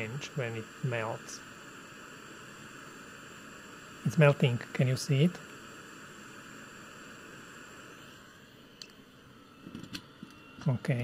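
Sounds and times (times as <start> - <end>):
hot-air station hissing: 0.0 - 11.0.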